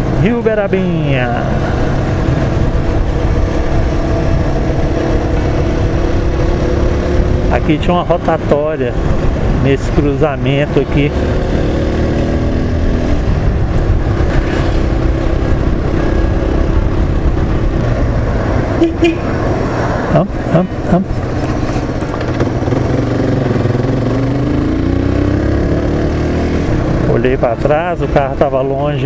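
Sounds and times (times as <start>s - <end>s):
motorcycle engine: 0.0s - 29.0s.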